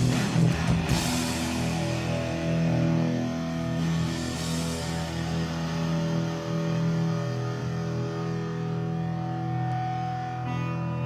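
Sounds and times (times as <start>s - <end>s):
distorted electric guitars ringing chord: 0.0s - 11.0s.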